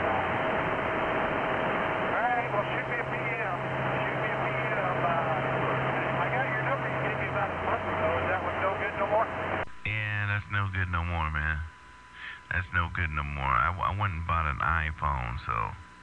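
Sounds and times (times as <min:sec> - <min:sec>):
radio static hiss: 0:00.0 - 0:16.0.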